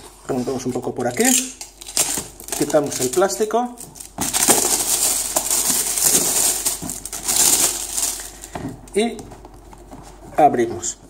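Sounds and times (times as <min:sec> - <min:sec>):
plastic shrink wrap crinkling: 0:01.0 - 0:10.3.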